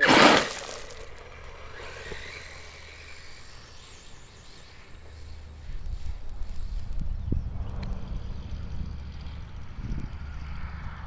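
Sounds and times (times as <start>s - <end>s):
faint electric motor whine: 0.0s - 11.0s.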